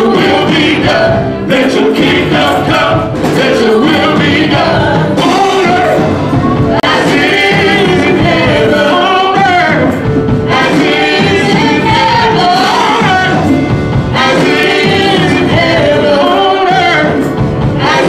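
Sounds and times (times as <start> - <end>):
backing voices singing: 0.0 - 18.0
gospel worship music: 0.0 - 18.0.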